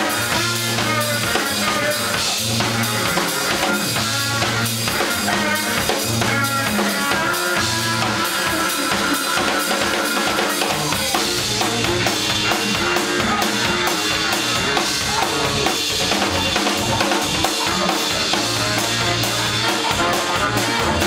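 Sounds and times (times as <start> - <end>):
drum kit beat: 0.0 - 21.0
horn playing high lines: 0.0 - 21.0
sousaphone bass line: 0.0 - 21.0.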